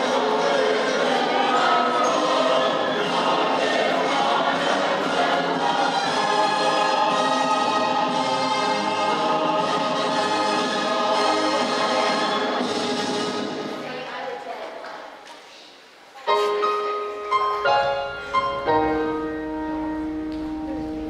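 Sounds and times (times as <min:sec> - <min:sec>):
children singing in choir: 0:00.0 - 0:12.6.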